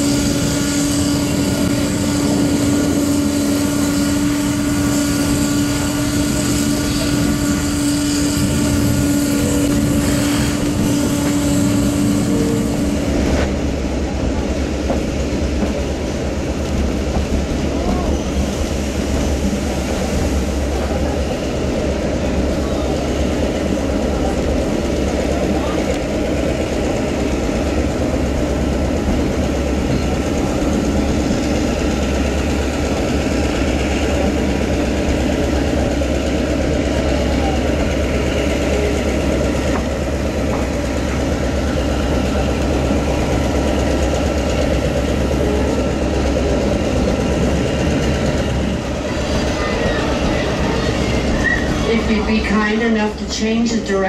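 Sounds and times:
diesel locomotive drone: 0.0 - 54.0
train wheels rolling on rails: 0.0 - 54.0.

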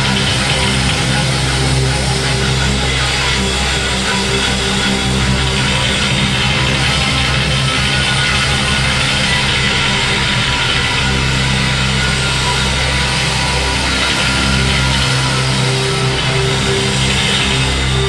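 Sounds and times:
bass guitar: 0.0 - 18.0
distorted electric guitar: 0.0 - 18.0
drums: 0.0 - 18.0.

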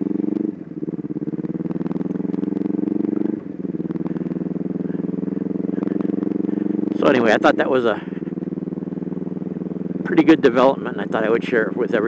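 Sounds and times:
motorcycle engine running: 0.0 - 12.0.

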